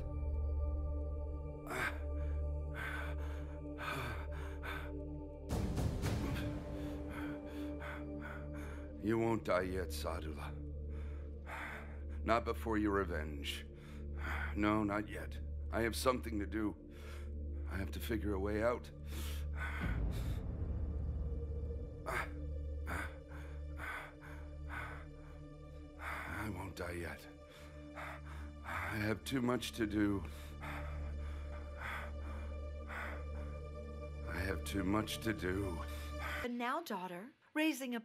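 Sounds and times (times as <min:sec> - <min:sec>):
low dramatic drone: 0:00.0 - 0:36.5
man gasping breaths: 0:01.7 - 0:05.1, 0:05.8 - 0:09.0, 0:19.0 - 0:29.2, 0:30.1 - 0:34.2, 0:35.7 - 0:36.5.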